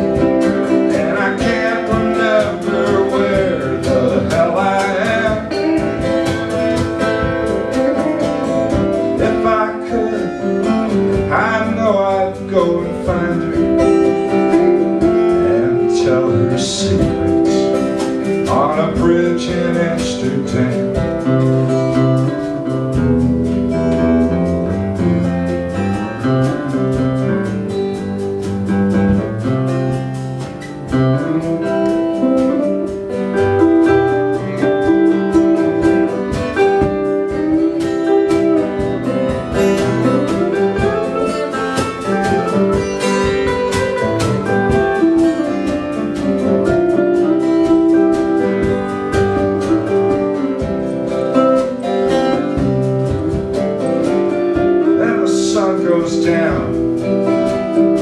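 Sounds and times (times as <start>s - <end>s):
drums keeping steady beat: 0.0s - 58.0s
electric lead guitar: 0.0s - 58.0s
strummed acoustic guitar: 0.0s - 58.0s.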